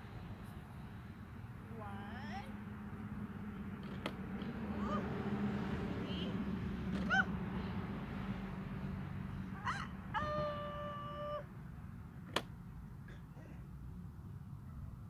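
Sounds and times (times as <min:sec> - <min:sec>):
toddler squealing: 0:07.0 - 0:07.3, 0:09.6 - 0:11.5.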